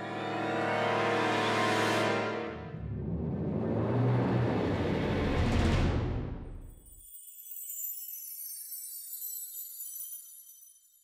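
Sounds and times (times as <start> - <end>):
dramatic orchestral swell: 0.0 - 6.6
low rumble: 2.6 - 6.8.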